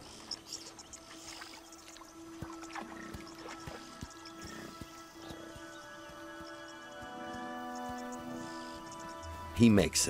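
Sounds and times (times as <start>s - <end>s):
hooves splashing in shallow water: 0.0s - 9.2s.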